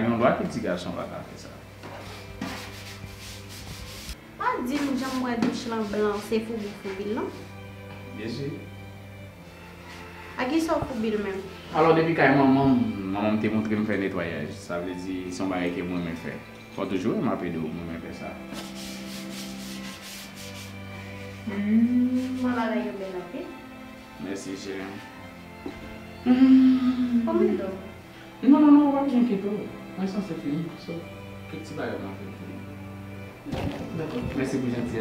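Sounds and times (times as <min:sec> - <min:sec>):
broom sweeping: 0:01.8 - 0:07.6, 0:18.4 - 0:22.9
faint rubbing: 0:01.9 - 0:07.4, 0:18.5 - 0:22.9
background music held note: 0:04.2 - 0:35.0.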